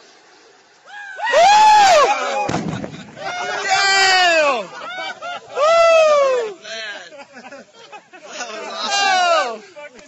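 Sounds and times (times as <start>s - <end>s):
dull boom: 2.5s - 3.6s
men shouting long calls: 3.2s - 7.1s, 8.3s - 9.8s.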